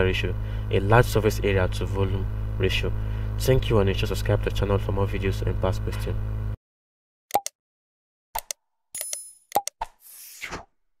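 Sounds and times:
short clicks and pops: 7.3 - 7.6, 8.4 - 9.9.

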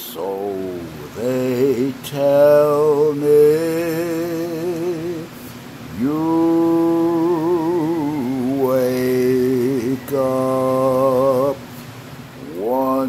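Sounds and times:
man singing held notes: 0.0 - 11.7, 12.4 - 13.0.

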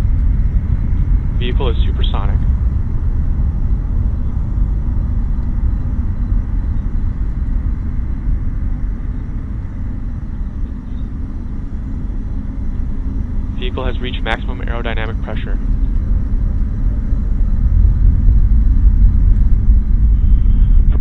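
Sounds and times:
deep rocket engine rumble: 0.0 - 21.0.

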